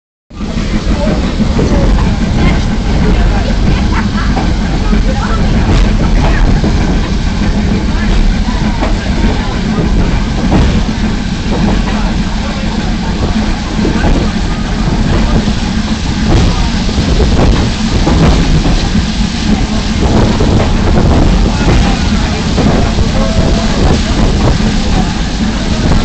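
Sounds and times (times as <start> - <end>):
train rumbling: 0.3 - 26.0.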